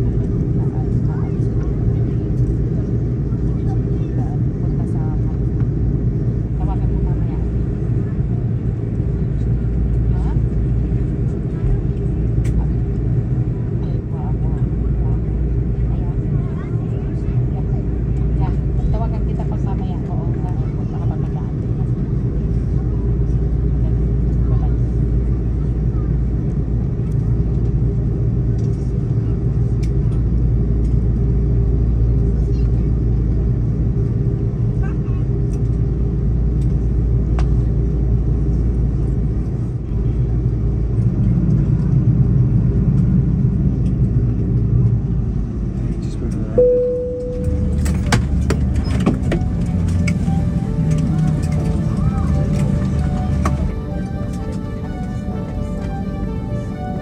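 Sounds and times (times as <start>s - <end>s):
aircraft engines rumbling: 0.0s - 57.0s
short tone: 46.6s - 57.0s.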